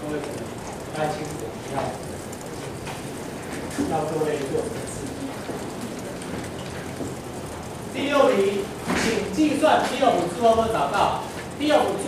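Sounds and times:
person lecturing: 0.0 - 2.2, 3.7 - 5.5, 7.9 - 12.0
steady background hiss: 0.0 - 12.0.

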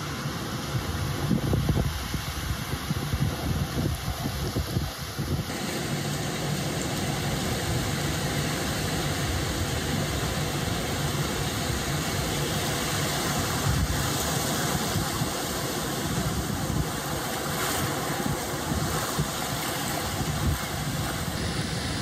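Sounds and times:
surf washing on a beach: 0.0 - 22.0
wind rumbling on microphone: 0.0 - 22.0.

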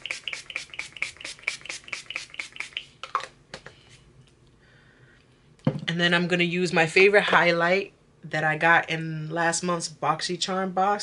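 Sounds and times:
spray bottle spritzes: 0.0 - 3.0.

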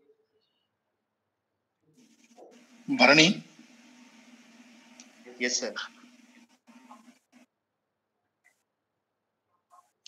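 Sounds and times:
faint microphone hum and hiss: 2.0 - 7.4.

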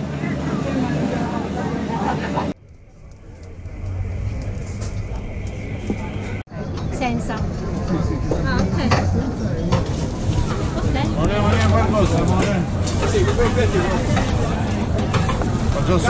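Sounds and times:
chatter of voices: 0.0 - 16.0.

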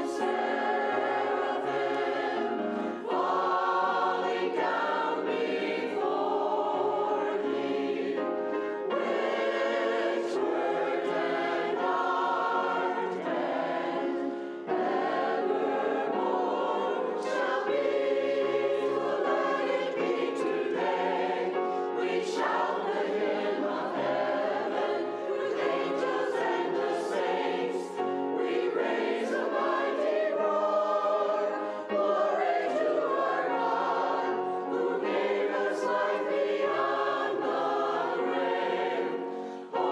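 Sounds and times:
choir singing in parts: 0.0 - 39.9
grand piano accompaniment: 0.0 - 39.9.

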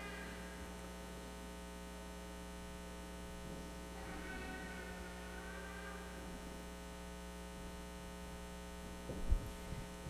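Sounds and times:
electrical mains hum: 0.0 - 10.0
microphone handling thud: 9.0 - 10.0.

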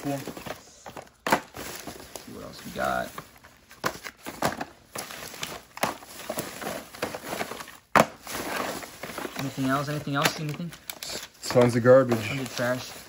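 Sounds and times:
boxes shifting: 0.0 - 13.0
plastic bag rustling: 0.0 - 13.0.

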